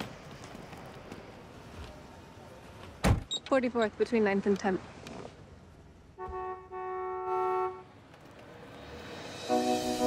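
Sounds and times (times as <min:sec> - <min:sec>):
car horn honking: 0:06.2 - 0:08.0.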